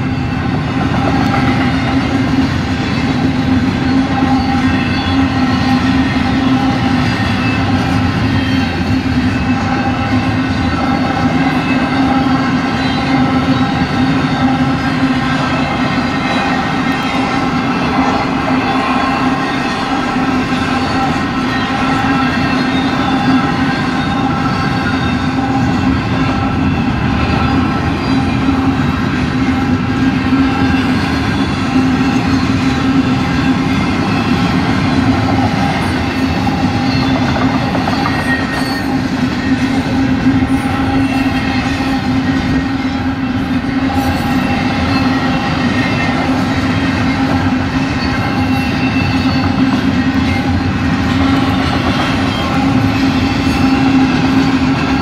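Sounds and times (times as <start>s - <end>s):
crossing electronic bells ringing: 0.0s - 55.0s
train wheels rumbling and clacking: 0.0s - 55.0s.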